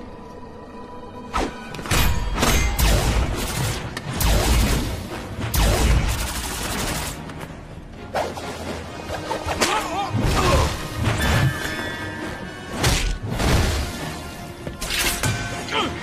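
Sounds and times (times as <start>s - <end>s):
dramatic action music: 0.0s - 16.0s.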